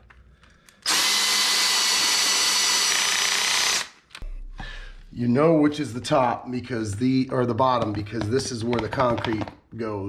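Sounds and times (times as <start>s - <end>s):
cordless drill drilling plastic: 0.8s - 4.0s.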